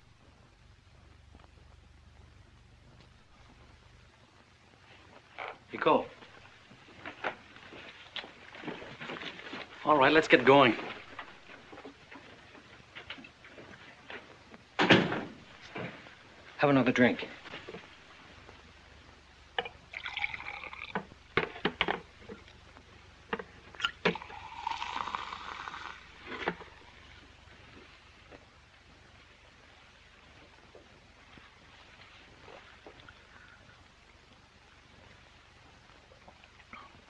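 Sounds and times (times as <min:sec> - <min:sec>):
liquid pouring into glasses: 0:19.6 - 0:21.1, 0:23.8 - 0:26.8.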